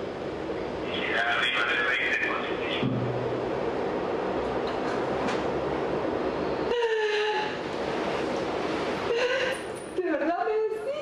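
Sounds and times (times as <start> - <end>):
loud steady rushing noise: 0.0 - 10.4
woman crying: 6.7 - 7.6, 9.1 - 11.0.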